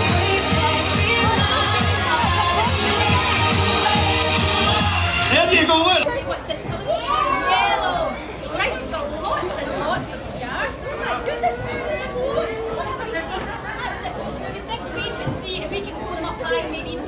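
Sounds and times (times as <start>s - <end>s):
children and adults chattering: 0.0s - 17.0s.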